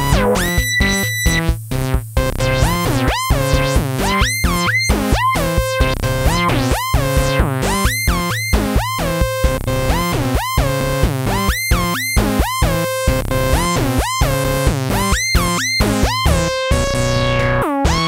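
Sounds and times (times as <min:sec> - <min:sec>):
low synth bass line: 0:00.0 - 0:04.6, 0:05.4 - 0:18.0
drum machine hits: 0:00.0 - 0:06.4.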